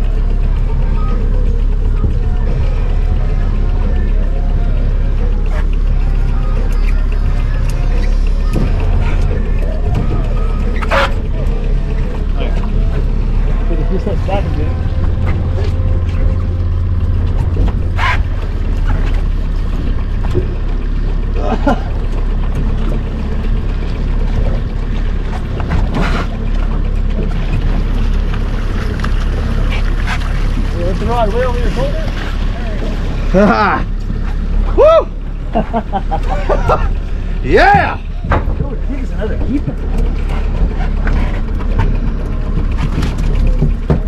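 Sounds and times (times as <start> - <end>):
boat motor running: 0.0 - 44.0.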